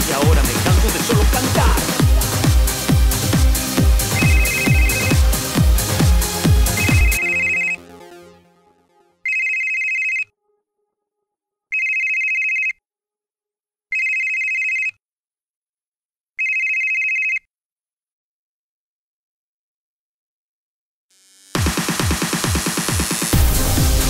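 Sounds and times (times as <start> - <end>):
electronic music: 0.0 - 9.3, 21.6 - 24.0
telephone ringtone: 4.1 - 5.2, 6.6 - 7.8, 9.2 - 10.3, 11.7 - 12.8, 13.9 - 15.0, 16.4 - 17.5.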